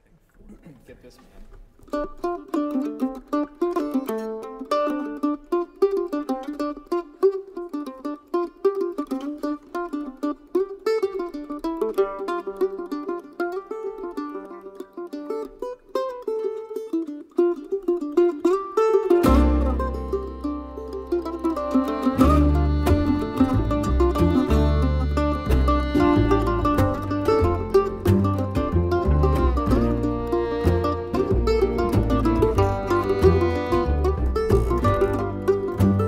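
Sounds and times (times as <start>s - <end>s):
mandolin melody: 1.7s - 36.0s
upright bass notes: 19.2s - 36.0s.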